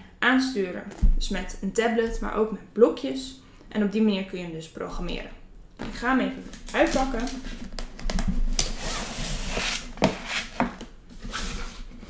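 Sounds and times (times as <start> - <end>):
cardboard box scraping out of sleeve: 8.6 - 12.0.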